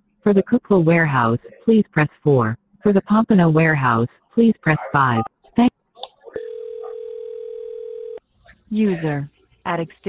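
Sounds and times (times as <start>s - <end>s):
telephone ringback tone: 6.4s - 8.2s.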